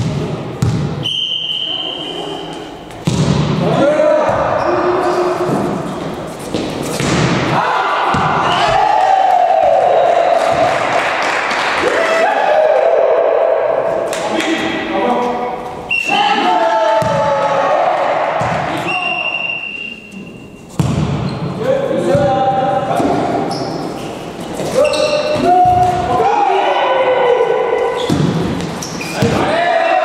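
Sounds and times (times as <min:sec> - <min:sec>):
players shouting: 0:07.5 - 0:11.0, 0:15.9 - 0:19.2, 0:24.8 - 0:28.2, 0:29.2 - 0:30.0.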